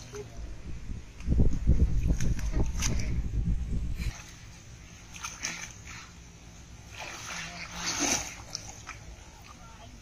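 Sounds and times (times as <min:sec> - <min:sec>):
pond water splashing: 0:00.0 - 0:00.6, 0:01.9 - 0:10.0.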